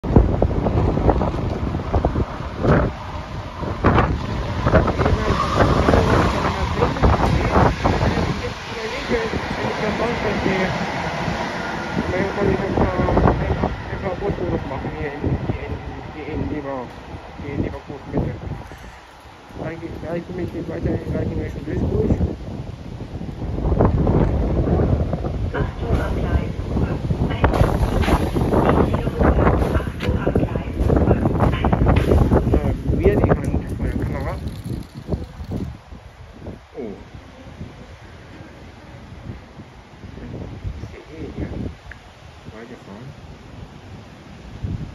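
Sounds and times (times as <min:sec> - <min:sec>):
wind buffeting microphone: 0:00.0 - 0:44.9
train passing with wheels clattering: 0:00.6 - 0:16.2.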